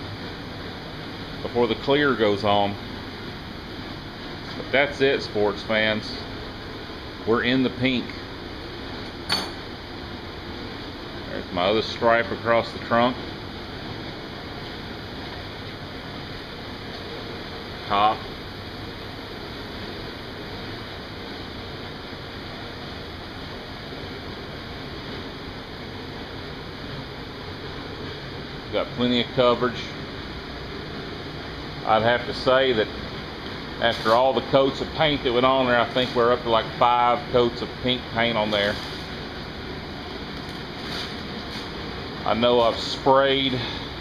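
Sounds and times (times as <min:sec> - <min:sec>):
ventilation fan rushing: 0:00.0 - 0:44.0.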